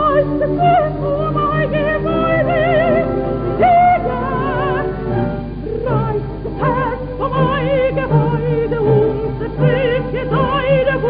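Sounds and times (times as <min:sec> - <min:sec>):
full orchestra: 0:00.0 - 0:11.0
operatic soprano singing: 0:00.0 - 0:11.0.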